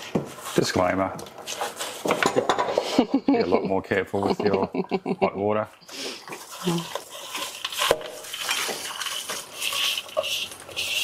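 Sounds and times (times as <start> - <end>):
boiling water: 3.2 - 11.0.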